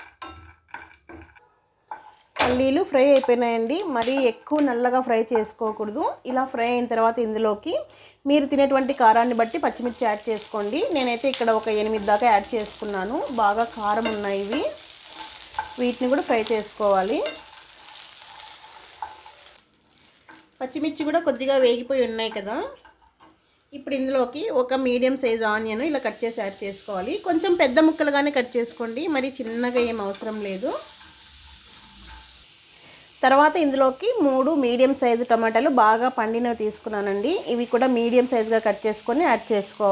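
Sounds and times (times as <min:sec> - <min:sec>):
metal spatula scraping a pan: 0:00.0 - 0:02.7, 0:11.5 - 0:21.2, 0:29.4 - 0:32.4
oil sizzling: 0:00.0 - 0:39.9.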